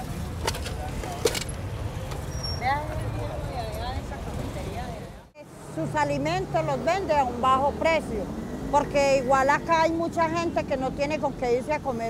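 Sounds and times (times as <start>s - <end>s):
low traffic rumble: 0.0s - 12.0s.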